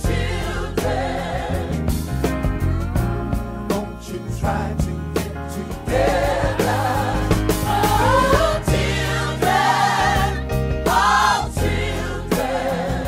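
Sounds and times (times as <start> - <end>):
gospel choir singing: 0.0 - 13.0
hip-hop bass and drum beat: 0.0 - 13.0.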